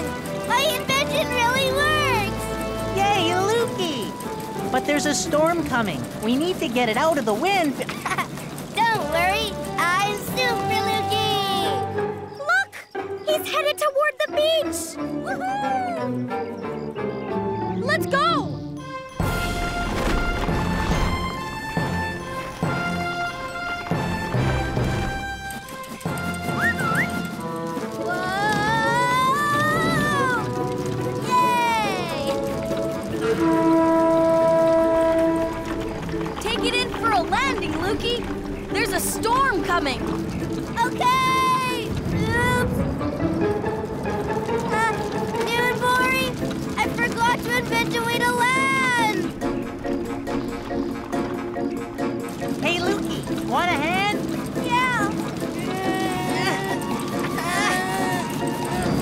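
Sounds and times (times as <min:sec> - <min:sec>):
background music with held notes: 0:00.0 - 0:59.0.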